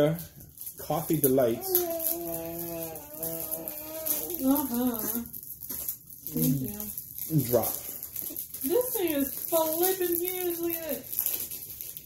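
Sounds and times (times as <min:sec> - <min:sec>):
person humming: 0:01.6 - 0:05.3.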